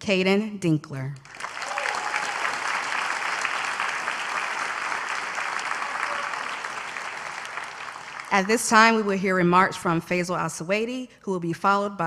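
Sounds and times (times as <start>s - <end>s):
audience applauding: 1.2s - 8.7s.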